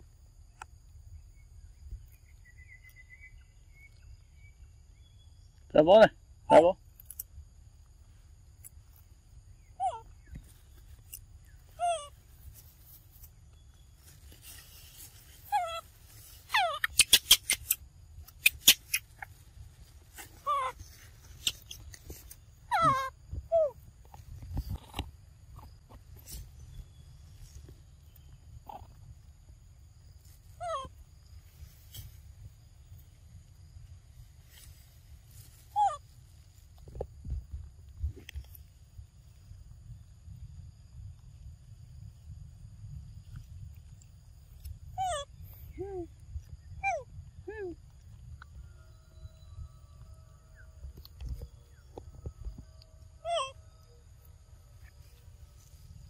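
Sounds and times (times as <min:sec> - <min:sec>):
macaque squeaky calls: 0:11.7 - 0:12.2, 0:15.4 - 0:19.4, 0:20.2 - 0:21.9, 0:22.7 - 0:23.8, 0:30.6 - 0:30.9, 0:53.2 - 0:53.6
sharp clicks: 0:16.8 - 0:19.2.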